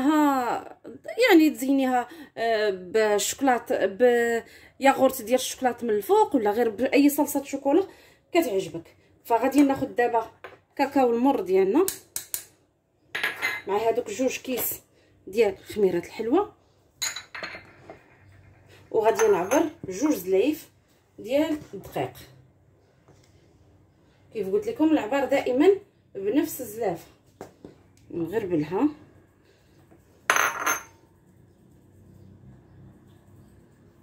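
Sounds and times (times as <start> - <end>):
kitchenware clinking: 13.1 - 13.8, 17.0 - 20.2, 30.3 - 31.0.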